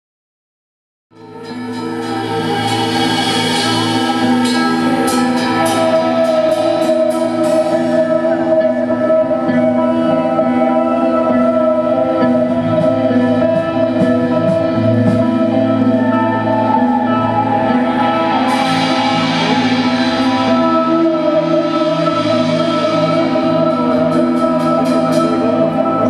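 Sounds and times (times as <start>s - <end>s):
blues-rock band playing: 1.3s - 26.0s.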